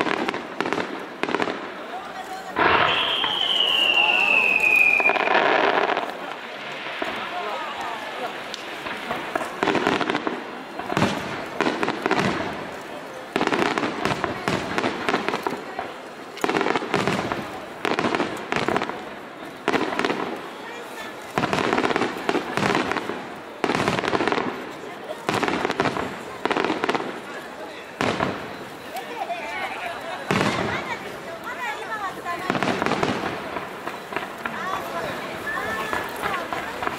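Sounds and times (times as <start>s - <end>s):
fireworks shells bursting: 2.5s - 7.5s.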